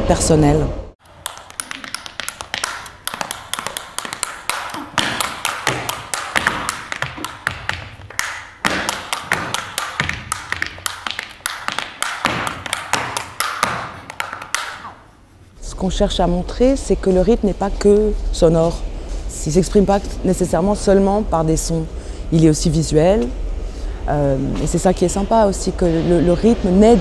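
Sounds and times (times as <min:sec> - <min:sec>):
tap shoes on stage floor: 0:01.0 - 0:14.9.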